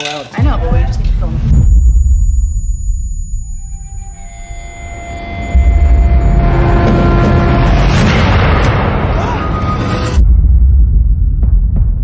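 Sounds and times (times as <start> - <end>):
deep rumbling drone: 0.5 - 12.0
held tones: 1.4 - 7.9.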